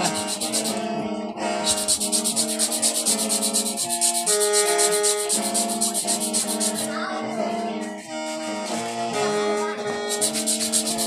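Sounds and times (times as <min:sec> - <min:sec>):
fast rasping: 0:00.0 - 0:11.0
mouth organ chords: 0:00.0 - 0:11.0.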